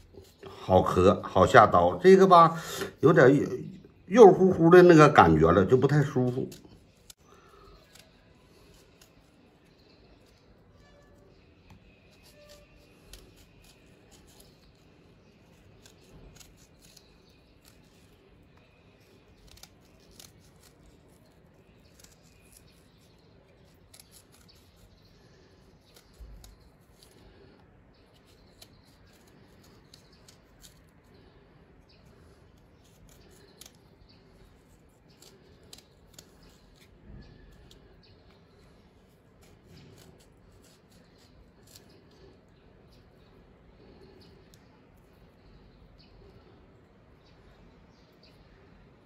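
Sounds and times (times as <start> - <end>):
knife carving a radish: 0.0 - 49.0.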